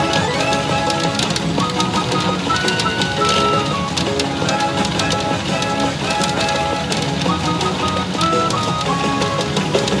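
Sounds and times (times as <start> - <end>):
machine background music: 0.0 - 10.0.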